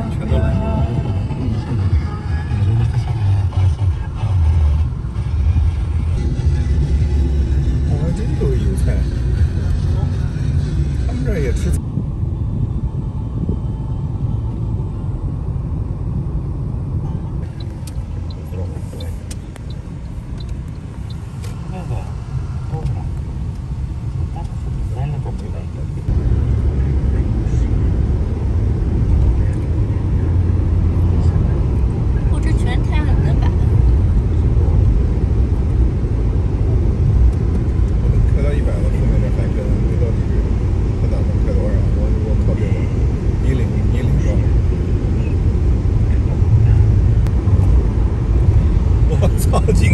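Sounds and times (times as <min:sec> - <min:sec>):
car road rumble: 0:00.0 - 0:49.9.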